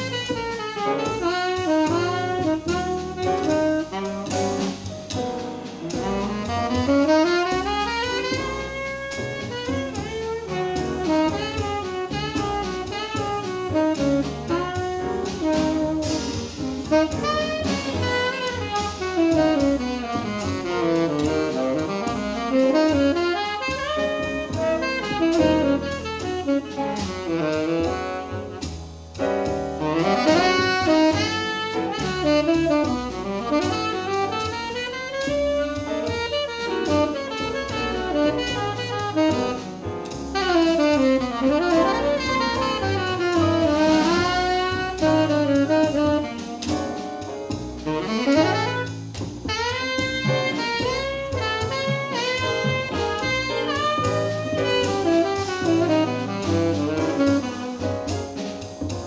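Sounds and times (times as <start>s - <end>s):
tenor saxophone: 0.0s - 4.9s, 5.8s - 28.8s, 29.8s - 59.0s
double bass: 0.0s - 59.0s
drum kit: 0.0s - 59.0s
piano: 0.0s - 59.0s.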